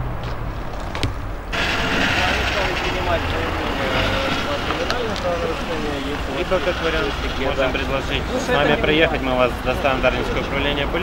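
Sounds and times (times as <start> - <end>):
voices talking outdoors: 1.4 - 11.0.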